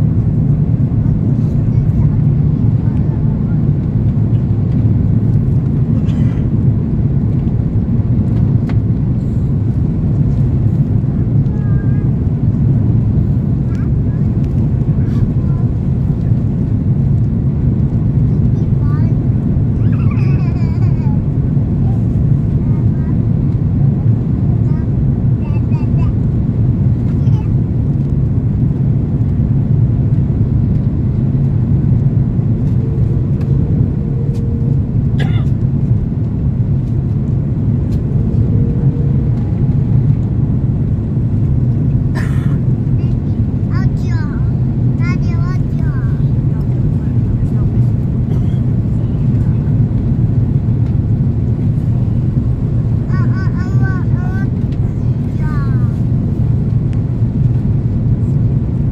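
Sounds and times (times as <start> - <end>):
airplane cabin roar: 0.0 - 58.9.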